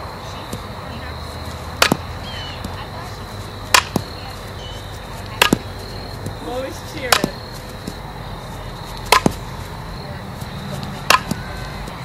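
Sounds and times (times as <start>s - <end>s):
bat cracking against ball: 1.7s - 2.8s, 3.7s - 4.2s, 5.4s - 6.4s, 7.1s - 8.0s, 8.9s - 9.5s, 10.4s - 11.6s.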